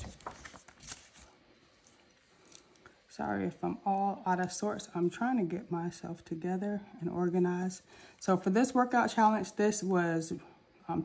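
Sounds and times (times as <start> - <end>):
paper sheets rustling on table: 0.0 - 2.8.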